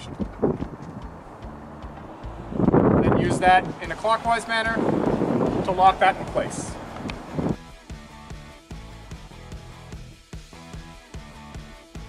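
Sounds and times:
wind rumbling on microphone: 0.0s - 7.6s
man's voice: 3.0s - 4.9s, 5.5s - 6.8s.

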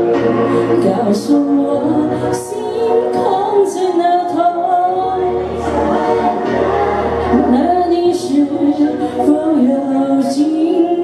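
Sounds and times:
karaoke backing track: 0.0s - 11.0s
woman singing pop ballad: 0.0s - 11.0s
low bass line: 4.2s - 9.9s.

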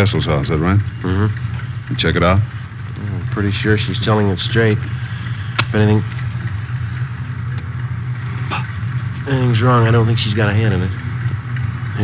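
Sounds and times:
car engine humming: 0.0s - 12.0s.

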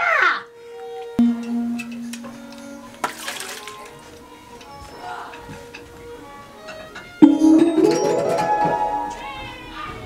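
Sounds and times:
soft held musical tones: 1.2s - 3.7s.

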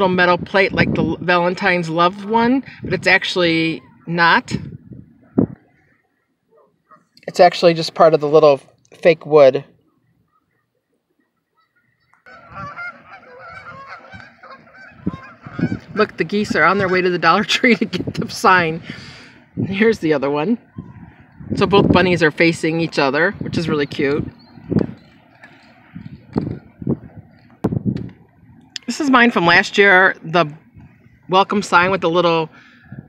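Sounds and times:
faint outdoor hiss: 0.0s - 32.9s
geese honking: 3.1s - 7.2s, 9.8s - 33.0s.

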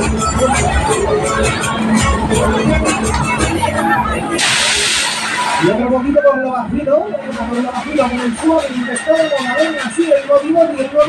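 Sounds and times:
fairground music with beat: 0.0s - 11.0s
compressed air hiss: 4.4s - 5.6s
person speaking over music: 5.6s - 11.0s.

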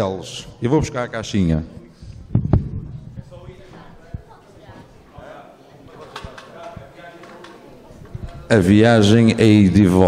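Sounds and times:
chatter of people in a hall: 0.0s - 10.0s
soft low thumps: 2.2s - 3.3s.

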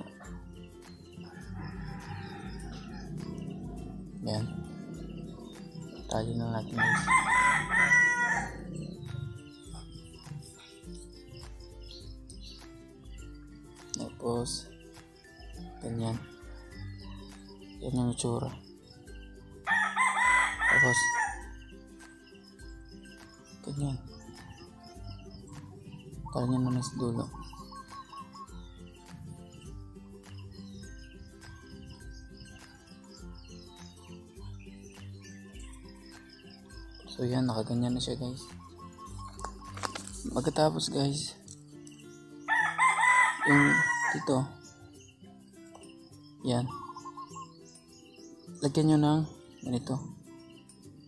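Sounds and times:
rooster crowing: 1.2s - 5.9s, 6.7s - 9.1s, 19.7s - 21.5s, 42.5s - 44.3s.

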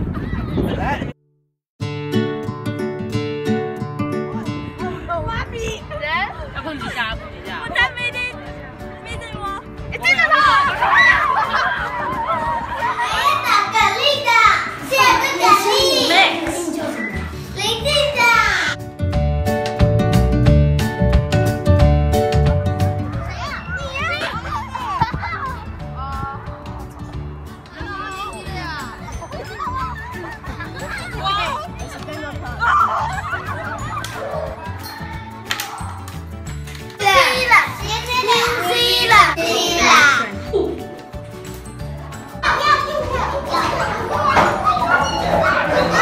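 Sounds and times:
upbeat background music: 1.9s - 46.0s
children shouting and squealing: 9.9s - 18.8s, 23.0s - 36.2s, 37.0s - 40.9s, 42.2s - 46.0s.

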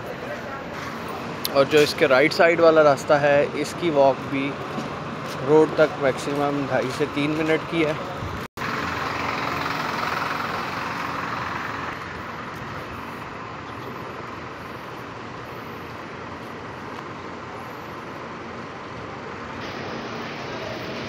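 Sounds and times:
traffic hiss: 0.4s - 21.0s.

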